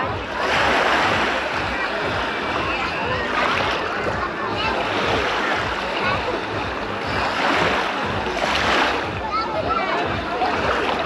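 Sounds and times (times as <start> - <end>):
people chattering: 0.0 - 11.0
waves washing onto shore: 0.0 - 11.0.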